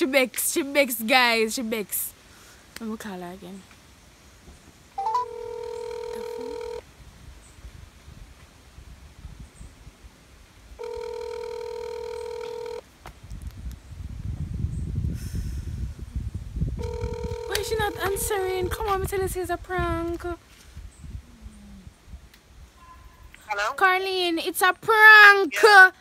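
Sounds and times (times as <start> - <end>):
phone ringback tone: 5.0 - 6.8, 10.8 - 12.8, 16.8 - 18.9.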